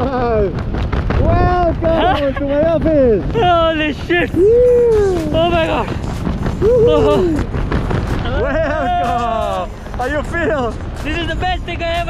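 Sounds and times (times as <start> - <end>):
wind rumbling on microphone: 0.0 - 12.0
person yelling and whooping: 4.2 - 5.9, 6.6 - 7.5, 8.2 - 9.7.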